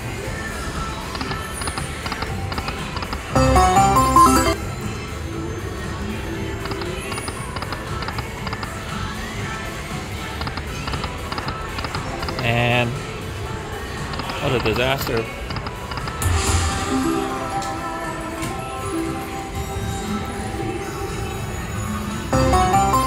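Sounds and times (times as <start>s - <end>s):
casino voices: 3.0s - 4.6s, 14.0s - 16.2s
slot machine electronic tones: 3.3s - 4.8s, 16.2s - 20.6s, 22.0s - 23.0s
chiming tones: 3.4s - 4.7s, 16.3s - 23.0s.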